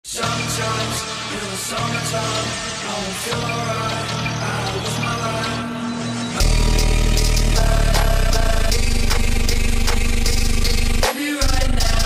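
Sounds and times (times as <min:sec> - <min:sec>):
bass-boosted music: 0:00.1 - 0:12.0
rising sweep: 0:01.1 - 0:11.1.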